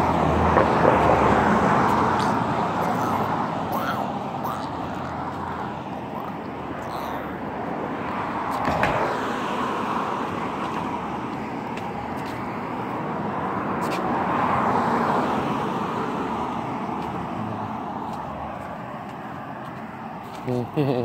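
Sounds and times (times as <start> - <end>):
vehicle passing close by: 0.0 - 20.9.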